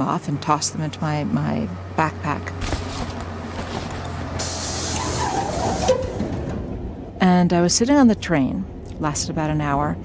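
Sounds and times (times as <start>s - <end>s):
train low rumble: 0.0s - 10.0s
train air brake hiss: 4.4s - 6.0s.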